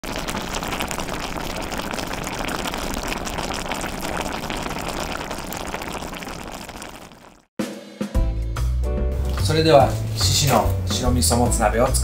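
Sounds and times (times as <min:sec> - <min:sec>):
broth simmering: 0:00.0 - 0:07.5.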